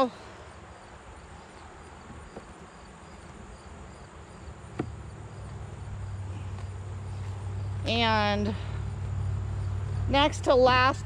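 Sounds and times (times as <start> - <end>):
crickets chirping: 0.0 - 11.0
honeybees humming: 0.0 - 11.0.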